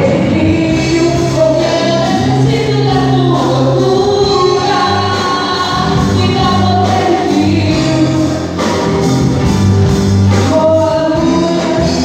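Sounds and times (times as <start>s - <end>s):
woman singing into microphone: 0.0s - 8.7s, 10.3s - 12.0s
gospel band playing: 0.0s - 12.0s.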